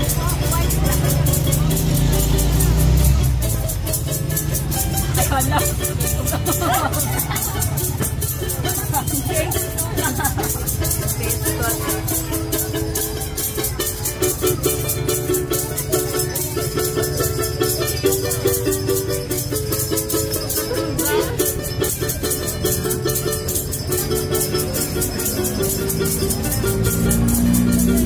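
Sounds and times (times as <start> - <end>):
ukulele strumming: 0.0 - 28.0.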